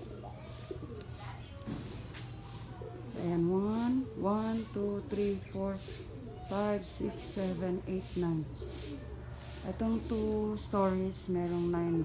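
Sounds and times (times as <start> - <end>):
dove cooing: 0.0 - 12.0.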